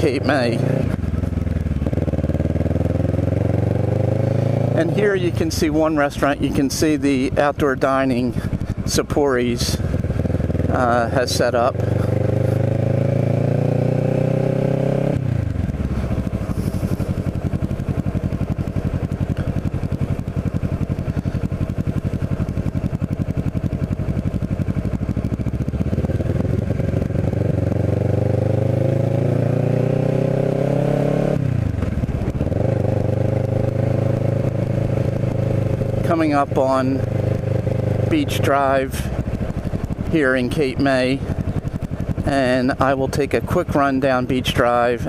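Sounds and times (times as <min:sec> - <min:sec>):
motorcycle engine revving: 0:00.0 - 0:45.0.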